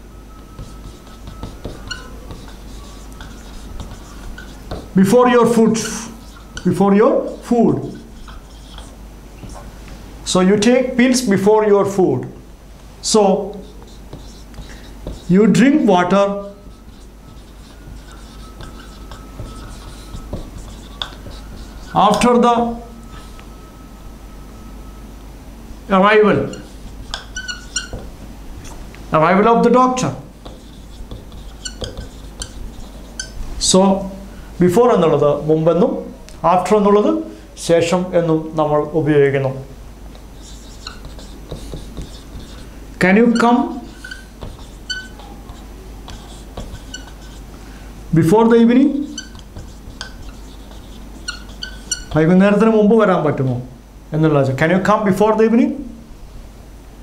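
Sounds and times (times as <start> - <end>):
marker scratching on whiteboard: 0.3 - 9.7, 13.0 - 23.6, 26.2 - 34.1, 40.2 - 47.6, 48.2 - 52.8
marker tip squeaks: 0.3 - 9.7, 13.5 - 15.4, 16.4 - 23.5, 26.4 - 28.8, 30.4 - 33.4, 40.4 - 42.7, 43.3 - 47.5, 49.0 - 52.2.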